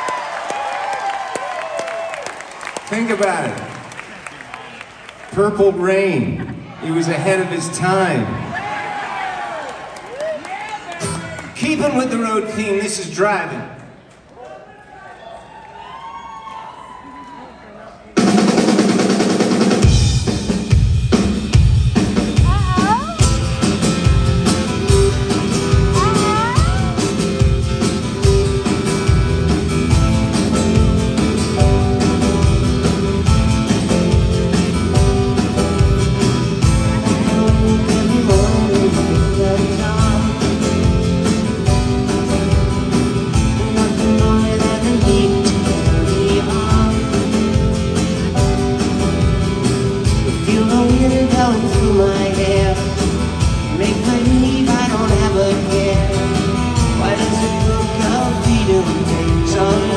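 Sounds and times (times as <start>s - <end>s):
drum kit steady beat: 18.2s - 59.9s
live rock band: 18.2s - 59.9s.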